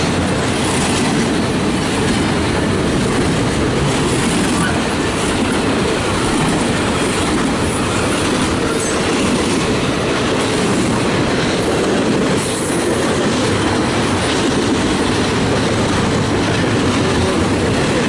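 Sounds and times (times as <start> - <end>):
freight train wheels on rails: 0.0 - 18.0.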